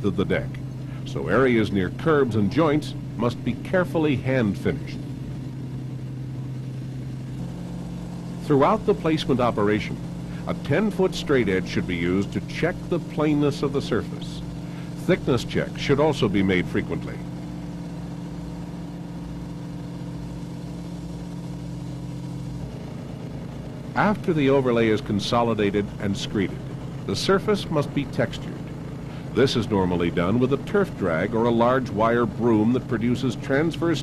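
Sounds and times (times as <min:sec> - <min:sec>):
construction machinery engine drone: 0:00.0 - 0:34.0.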